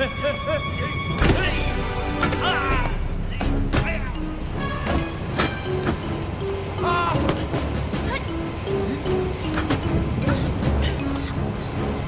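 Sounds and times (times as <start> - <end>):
held music notes: 0.0 - 12.0.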